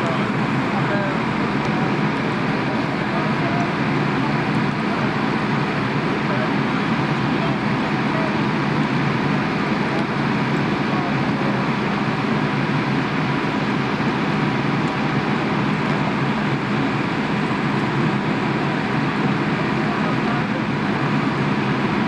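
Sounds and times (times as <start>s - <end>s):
indistinct voices: 0.0s - 21.6s
fire engine pump droning: 0.0s - 22.0s.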